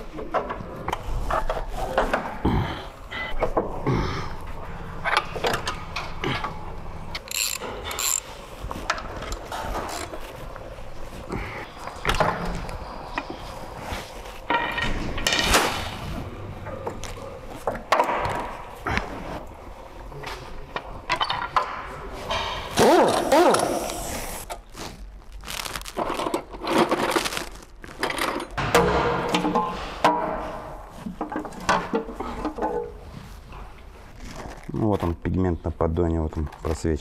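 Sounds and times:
metal tools clinking: 5.2s - 10.3s
hand ratchet clicking: 7.1s - 8.3s, 9.2s - 10.2s.

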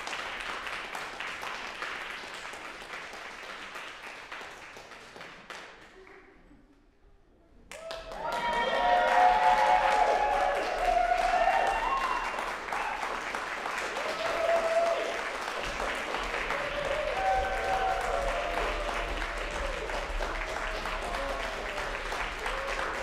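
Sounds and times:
audience applauding: 0.0s - 6.4s, 7.7s - 23.0s
crowd shouting and cheering: 7.8s - 13.3s, 13.9s - 23.0s.

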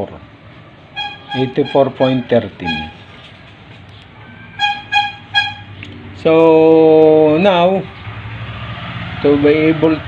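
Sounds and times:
short toots: 1.0s - 3.1s, 4.3s - 5.8s.

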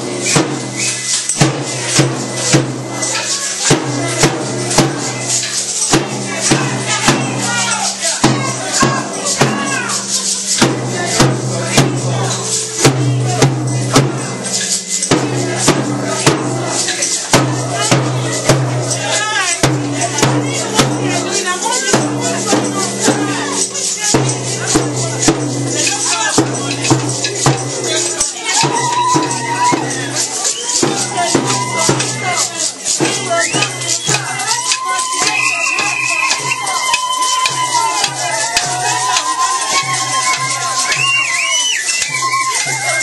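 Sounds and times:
rattles and shakers clattering: 0.2s - 43.0s
people shouting: 6.3s - 10.2s, 27.8s - 32.4s, 33.1s - 43.0s.

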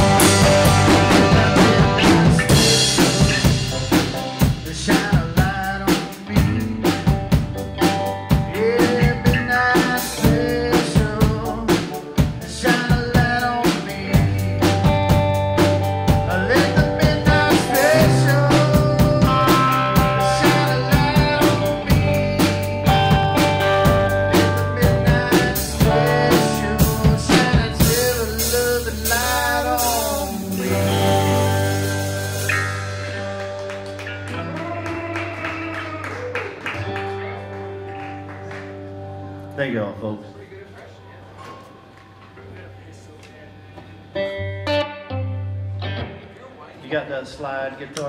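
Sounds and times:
drum kit steady beat: 0.0s - 35.1s
electric guitars: 0.0s - 40.2s, 43.8s - 46.7s.

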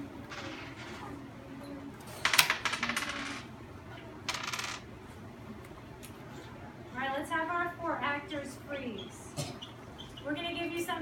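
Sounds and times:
die clattering on a tabletop: 2.2s - 3.5s, 4.3s - 4.8s.

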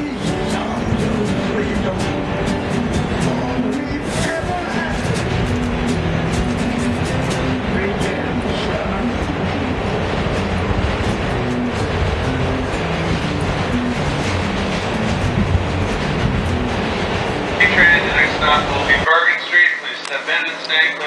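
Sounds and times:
person singing into a microphone: 0.0s - 2.3s
person playing guitar: 0.0s - 19.0s
train rumbling and rattling on rails: 0.0s - 21.0s.

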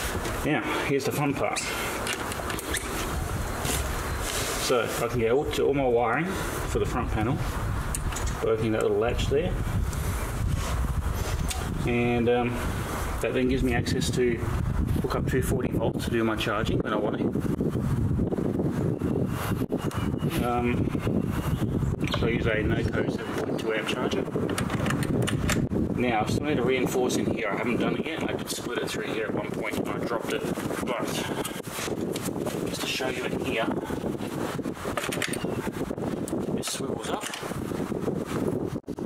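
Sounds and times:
wind on microphone: 0.0s - 39.0s.

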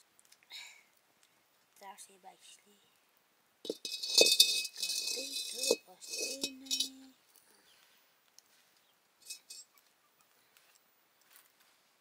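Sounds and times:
iron wok scraping on stone: 3.6s - 7.0s, 9.2s - 9.7s.

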